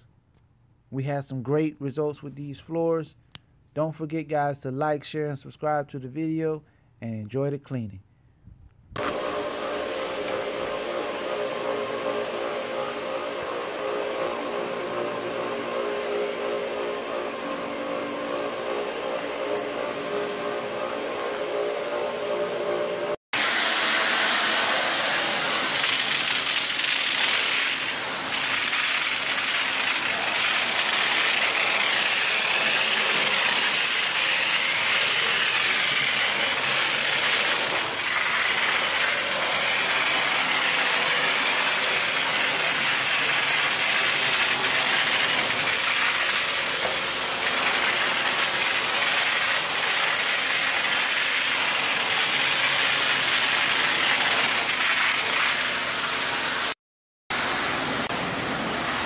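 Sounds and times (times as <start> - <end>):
floor scrubber motor hum: 9.0 - 59.0
water spray and vacuum suction: 9.0 - 59.0.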